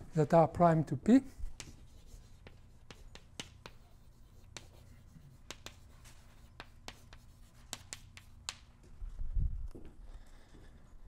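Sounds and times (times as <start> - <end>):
chalk tapping on blackboard: 1.4 - 8.7.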